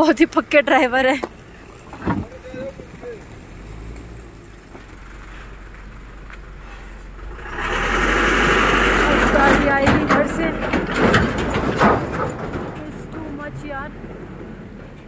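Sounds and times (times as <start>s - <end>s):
vehicle engine rumbling: 0.0s - 15.0s
loud rushing noise: 7.2s - 11.9s.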